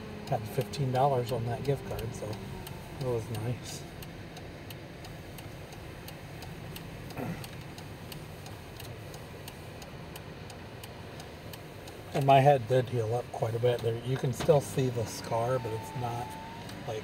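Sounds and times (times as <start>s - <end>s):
engine and road hum: 0.0s - 17.0s
turn signal ticking: 0.0s - 17.0s.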